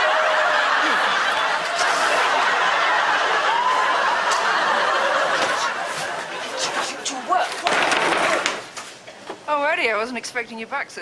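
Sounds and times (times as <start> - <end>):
studio audience laughing: 0.0 - 7.1.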